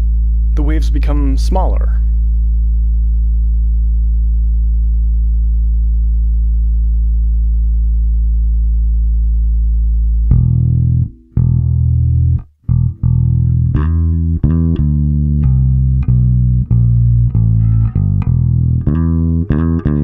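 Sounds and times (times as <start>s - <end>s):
bass guitar low note: 0.0s - 20.0s
plucked bass notes: 0.0s - 20.0s.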